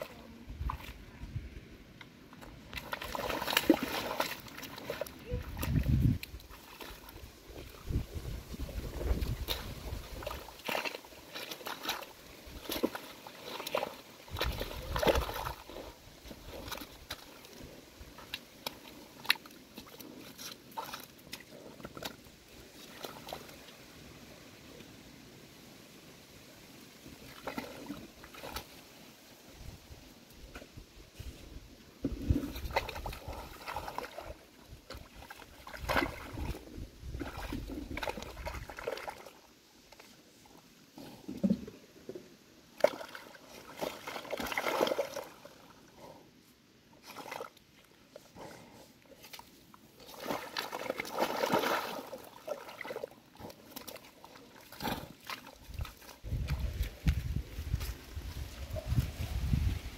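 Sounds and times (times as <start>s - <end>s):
mud and water sloshing: 0.0s - 25.0s, 26.0s - 59.9s.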